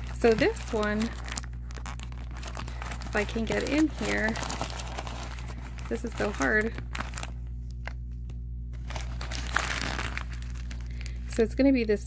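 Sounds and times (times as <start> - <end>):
paper crinkling: 0.0 - 11.5
steady low hum: 0.0 - 12.0.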